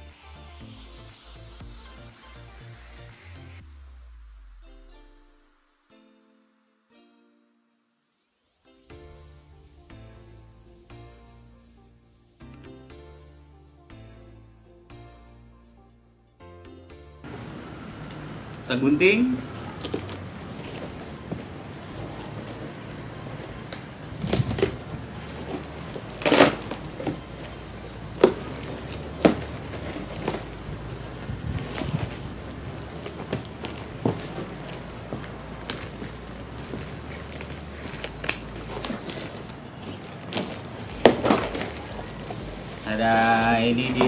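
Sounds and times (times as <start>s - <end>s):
cardboard and plastic crinkling: 19.2s - 44.0s
scissors cutting tape and cardboard: 25.4s - 32.3s.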